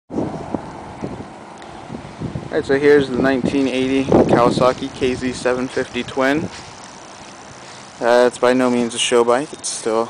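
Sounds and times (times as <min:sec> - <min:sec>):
wind rumbling on microphone: 0:00.1 - 0:09.2.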